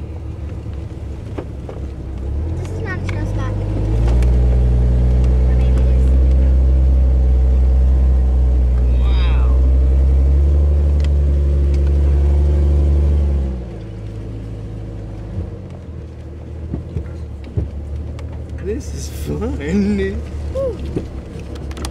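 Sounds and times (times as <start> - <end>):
vehicle engine droning: 0.0 - 21.9.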